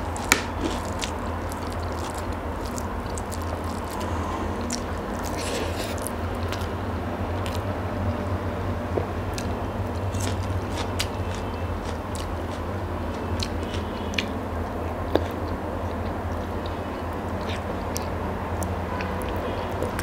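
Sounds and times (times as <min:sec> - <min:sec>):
person chewing food: 0:00.0 - 0:08.2, 0:09.0 - 0:20.0
low hum: 0:00.0 - 0:13.0.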